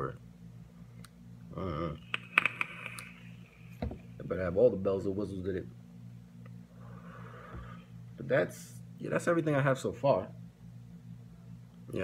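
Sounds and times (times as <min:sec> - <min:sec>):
vape device clicks and crackles: 0:02.1 - 0:03.2
air hissing through vape: 0:02.1 - 0:03.8.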